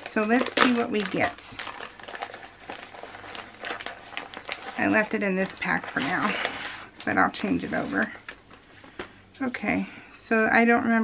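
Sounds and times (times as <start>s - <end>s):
plastic pack crinkling: 0.0s - 9.2s.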